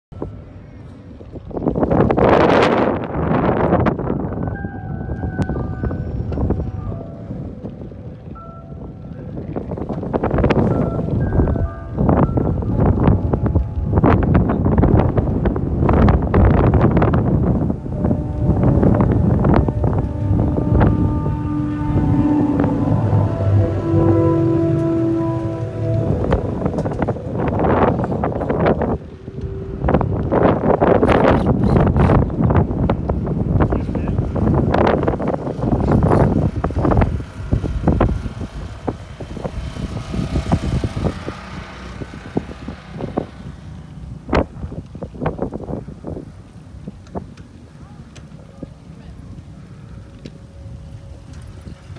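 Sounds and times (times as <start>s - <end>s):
wind buffeting microphone: 0.1s - 51.9s
held tones: 4.4s - 32.1s.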